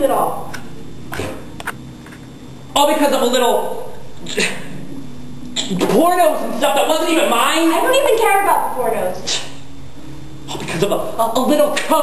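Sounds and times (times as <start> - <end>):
man speaking: 2.7 - 4.6, 5.6 - 7.9, 10.5 - 12.0.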